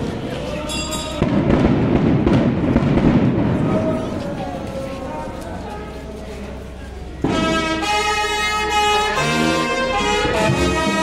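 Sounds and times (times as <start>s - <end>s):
firecrackers crackling: 0.0s - 5.6s, 7.2s - 11.0s.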